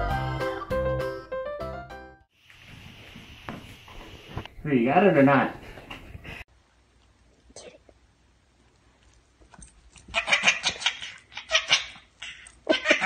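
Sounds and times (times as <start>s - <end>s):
baby laughing and squealing: 10.1s - 13.0s.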